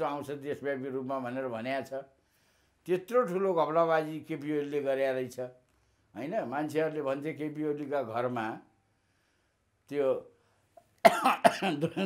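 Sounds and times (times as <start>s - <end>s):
man speaking: 0.0s - 2.1s, 2.9s - 5.5s, 6.2s - 8.7s, 9.9s - 10.3s
man coughing: 11.0s - 12.0s.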